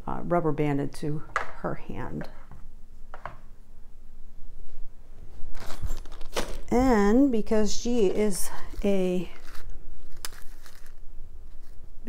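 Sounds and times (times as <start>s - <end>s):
plastic packaging rustling: 5.5s - 6.8s, 8.0s - 11.9s.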